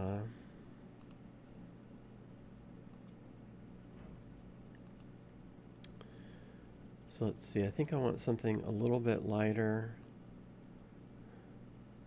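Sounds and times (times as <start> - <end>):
low steady hum: 0.0 - 12.0
computer mouse clicks: 1.0 - 1.2, 2.9 - 3.2, 4.7 - 5.1, 5.7 - 6.1.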